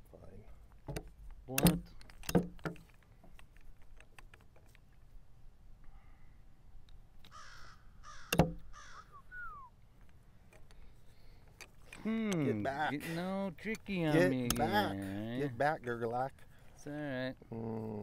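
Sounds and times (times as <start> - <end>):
bird calling harshly: 7.3 - 9.8.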